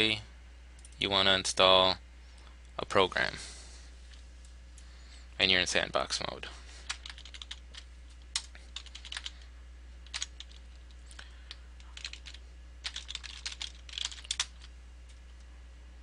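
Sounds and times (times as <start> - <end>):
computer keyboard typing: 6.8 - 9.4, 10.1 - 14.7.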